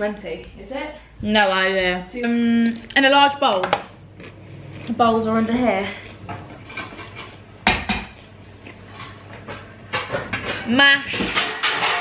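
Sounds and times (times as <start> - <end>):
bowls clattering: 6.2 - 12.0.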